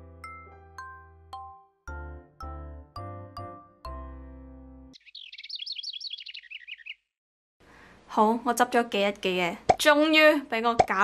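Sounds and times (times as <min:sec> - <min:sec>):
background music: 0:00.0 - 0:05.0
high twittering bird chirps: 0:05.0 - 0:07.2.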